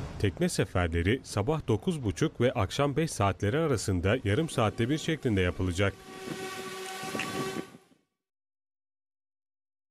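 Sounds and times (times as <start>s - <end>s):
steady waterfront hiss: 4.2s - 7.8s.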